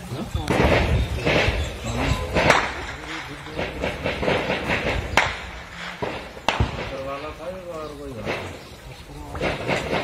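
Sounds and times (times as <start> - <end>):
voices: 0.0 - 10.0
sharp bangs: 0.4 - 10.0.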